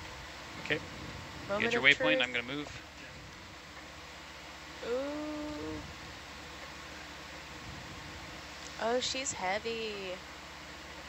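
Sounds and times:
low background hum: 0.0s - 11.0s
person saying ooh: 1.6s - 2.4s, 4.8s - 5.8s.

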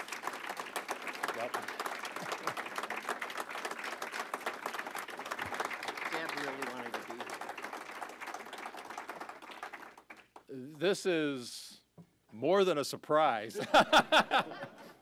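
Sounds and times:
audience applauding: 0.0s - 10.5s.

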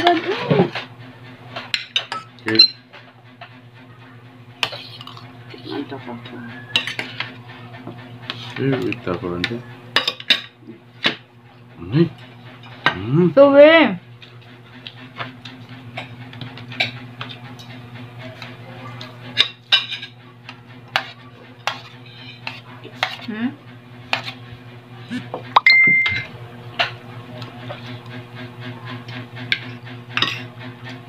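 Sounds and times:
metal spoon scraping a dish: 20.9s - 23.3s, 24.0s - 24.4s, 29.5s - 30.5s.

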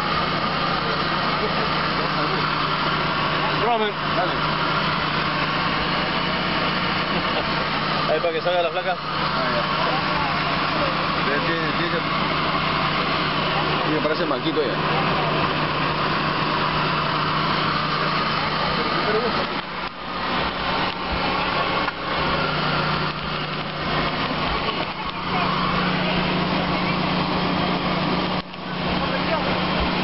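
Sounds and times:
engine droning: 0.0s - 30.0s
indistinct voices: 0.0s - 30.0s.

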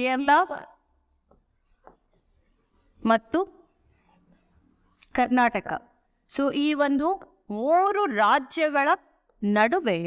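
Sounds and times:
pen writing on a board: 0.7s - 6.8s.

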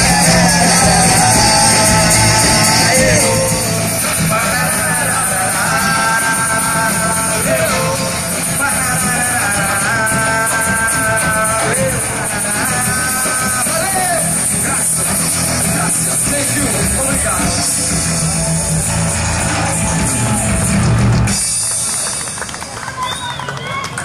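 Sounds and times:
rock band music: 0.0s - 22.5s
outdoor voices: 0.0s - 24.0s.

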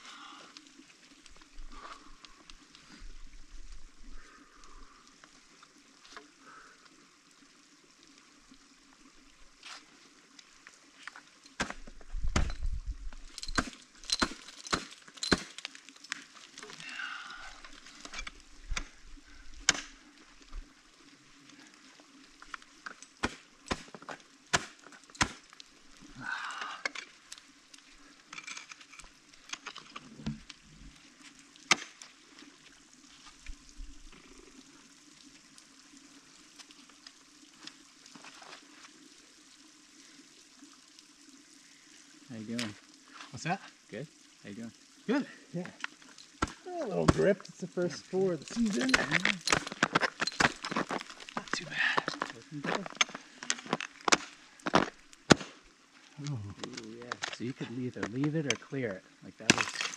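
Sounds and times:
ice tools striking ice: 13.4s - 15.6s, 23.2s - 25.5s, 48.5s - 55.6s, 59.4s - 59.9s.

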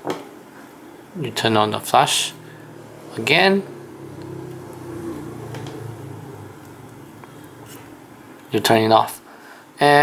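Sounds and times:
vehicle engine hum: 1.1s - 8.9s.

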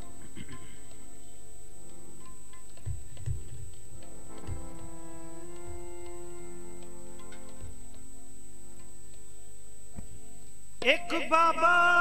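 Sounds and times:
harmonium chords: 0.0s - 12.0s
low thumps: 2.5s - 8.9s.

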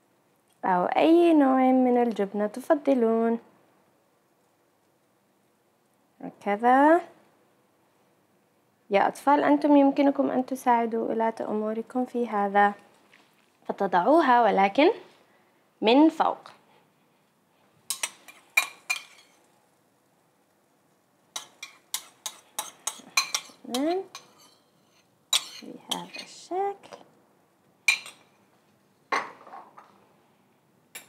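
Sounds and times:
metal utensils clinking on dishes: 17.9s - 19.3s, 21.4s - 26.4s, 27.9s - 28.3s.

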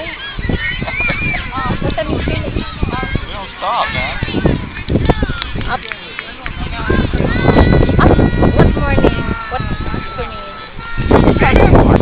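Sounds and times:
children and adults calling out: 0.0s - 12.0s.

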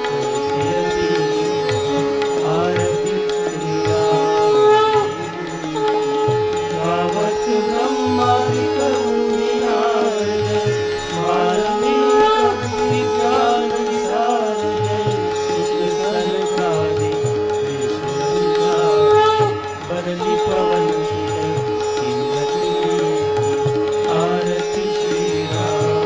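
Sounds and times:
held drone note: 0.0s - 26.0s
hymn sung to music: 6.8s - 17.3s.

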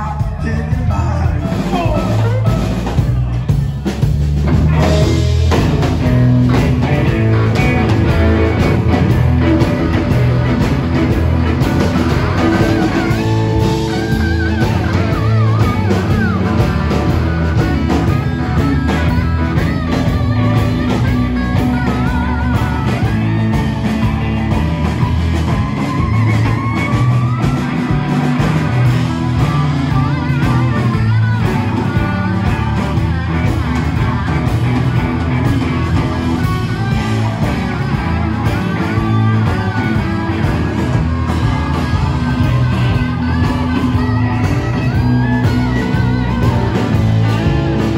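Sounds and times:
bending guitar lead line: 0.0s - 47.9s
live rock band playing: 0.0s - 47.9s.

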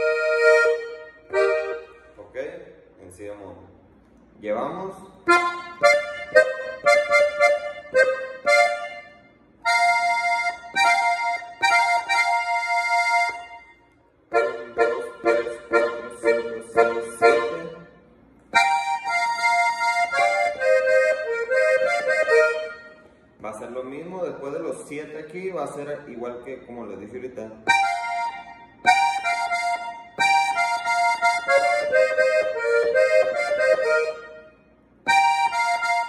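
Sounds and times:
accordion playing: 0.0s - 2.4s, 5.2s - 23.7s, 27.6s - 36.0s.

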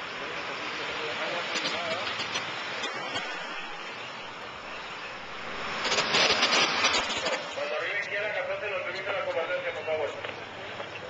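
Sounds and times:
van passing close: 0.0s - 10.8s
city street traffic: 0.0s - 11.0s.

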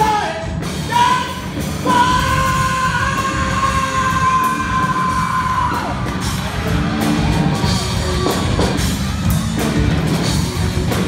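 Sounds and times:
singer yelling high notes: 0.0s - 6.0s
rock band playing: 0.0s - 11.0s.

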